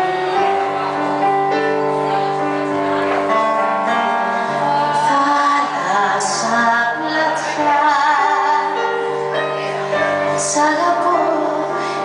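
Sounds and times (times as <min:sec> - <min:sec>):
held keyboard chords: 0:00.0 - 0:12.0
woman singing into microphone: 0:03.9 - 0:12.0.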